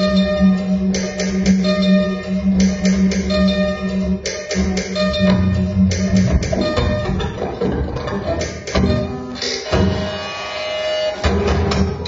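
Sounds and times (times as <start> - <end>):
low electronic throb: 0.0 - 10.5
bowed instrument ringing tones: 0.0 - 12.0.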